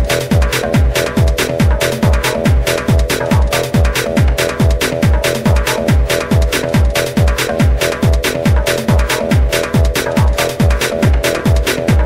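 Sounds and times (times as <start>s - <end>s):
deep kick drum: 0.0s - 12.0s
hi-hat strikes: 0.0s - 12.0s.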